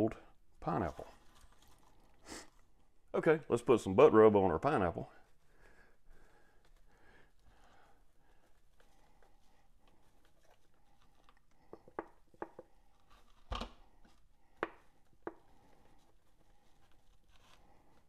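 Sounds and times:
spice shaker clicks and taps: 11.6s - 12.7s.

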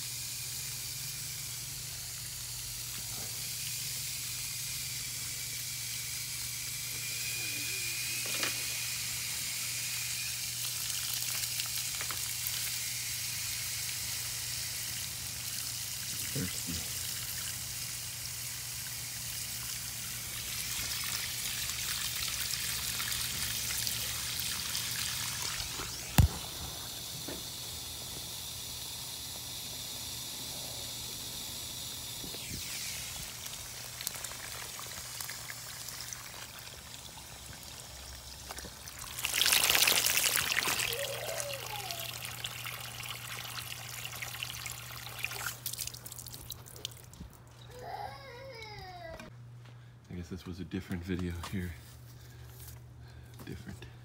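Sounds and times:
hose water running into soil: 0.0s - 49.0s
water trickling out of pot: 32.6s - 47.2s.

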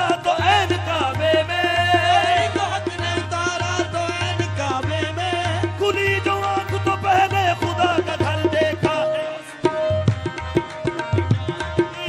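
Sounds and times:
harmonium: 0.0s - 12.0s
tabla strokes: 0.0s - 12.0s.

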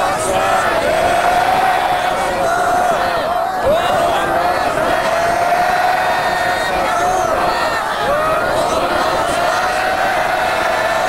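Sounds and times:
crowd of voices calling out: 0.0s - 11.0s.

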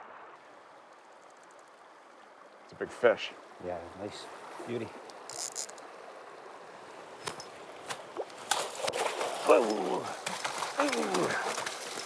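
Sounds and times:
river water running: 0.0s - 12.0s
sharp splashes: 7.8s - 12.0s
fish splashing at surface: 8.2s - 12.0s.

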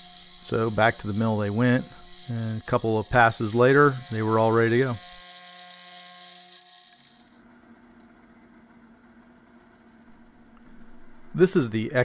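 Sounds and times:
milling machine cutting metal: 0.0s - 7.4s.

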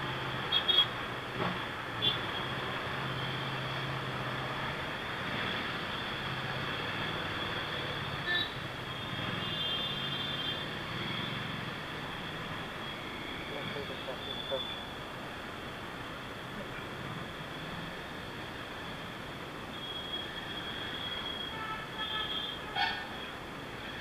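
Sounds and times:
road and traffic noise: 0.0s - 24.0s.

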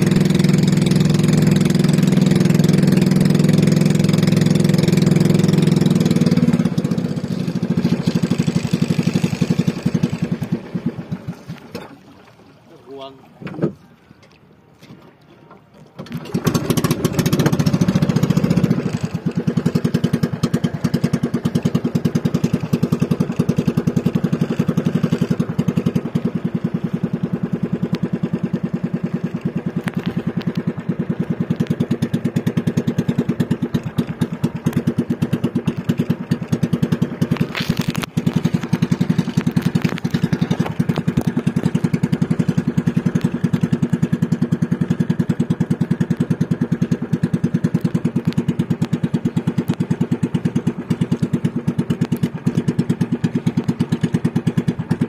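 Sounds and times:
small boat engine running: 0.0s - 55.0s.

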